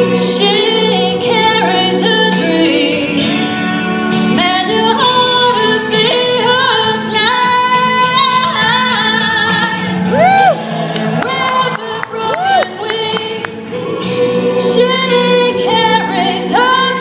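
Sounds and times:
woman singing a ballad: 0.0 - 17.0.

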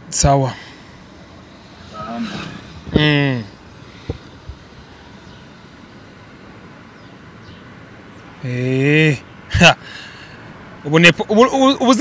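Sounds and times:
car cabin rumble: 1.1 - 6.7
loud exclamation: 1.8 - 3.6
short voiced sound: 1.9 - 3.5.

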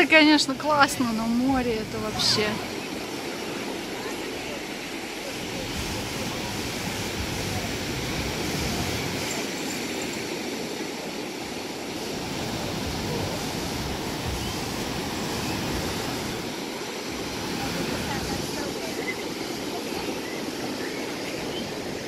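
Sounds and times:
surf breaking on sandy beach: 0.0 - 22.0.

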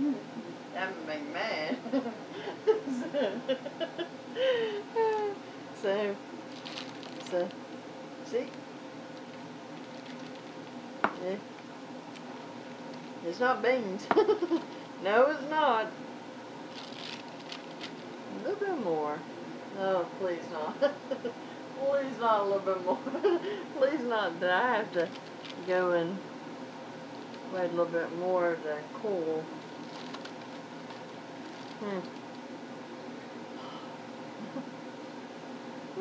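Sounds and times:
woman humming hmm: 0.0 - 0.6, 4.4 - 5.4
low room hum: 0.0 - 36.0
wax paper crinkling: 6.5 - 7.6, 8.5 - 10.8, 11.4 - 13.2, 16.7 - 18.1, 24.9 - 25.8, 29.5 - 32.4.

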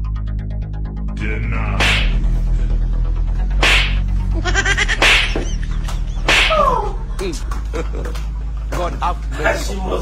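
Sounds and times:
background music with low drone: 0.0 - 10.0
whip-like swoosh: 3.6 - 4.0, 6.2 - 6.7.

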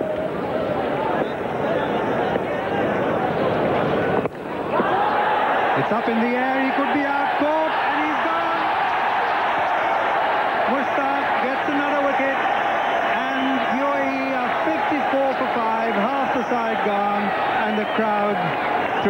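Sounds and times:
stadium crowd cheering: 0.0 - 19.0.

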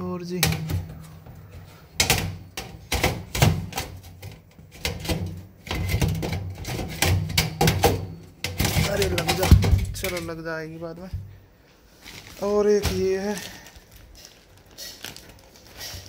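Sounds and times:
metal filter clicking and knocking: 0.4 - 10.5.

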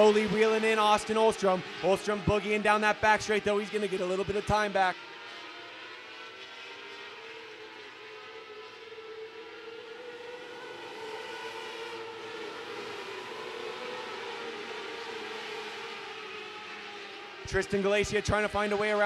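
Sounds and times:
race car engines droning: 0.0 - 19.0.

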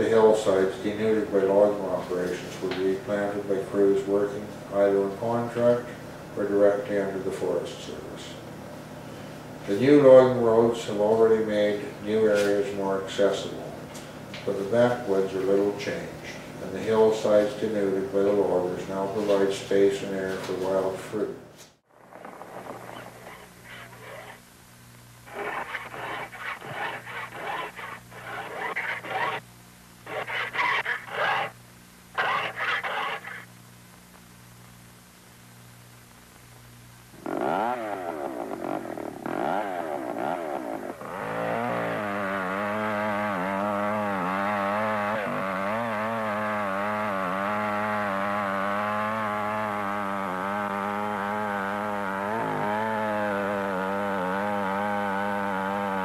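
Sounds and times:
steady low hum: 0.0 - 56.0
chainsaw cutting wood: 25.3 - 29.4, 37.2 - 56.0
hand file rasping on saw teeth: 25.3 - 29.4.

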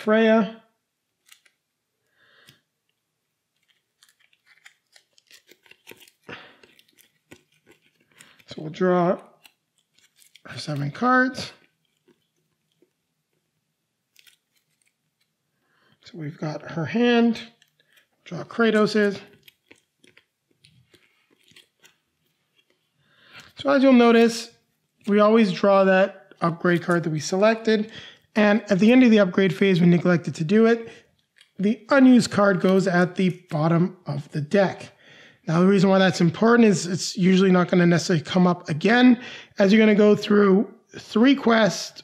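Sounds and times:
playing cards clicking and snapping: 1.2 - 1.6, 3.5 - 13.4, 14.1 - 15.4, 17.5 - 22.8, 31.2 - 31.6.

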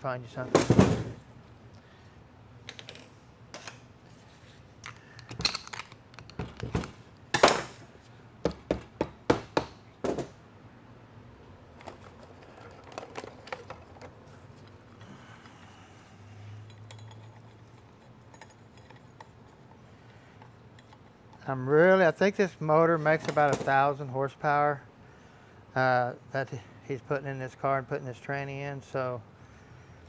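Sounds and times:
metal clinks and knocks: 16.6 - 21.4.

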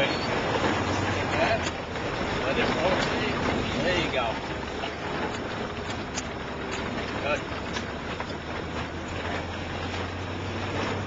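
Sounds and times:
car engine drone: 0.0 - 11.0
tyre noise on gravel road: 0.0 - 11.0.

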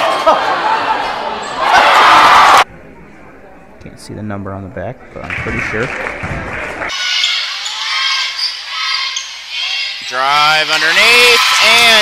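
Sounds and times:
crowd noise: 0.0 - 12.0.

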